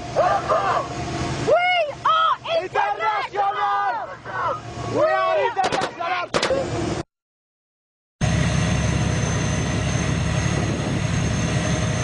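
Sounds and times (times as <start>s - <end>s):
men calling out: 0.1s - 1.0s, 1.8s - 6.7s
steady low rumble: 8.2s - 12.0s.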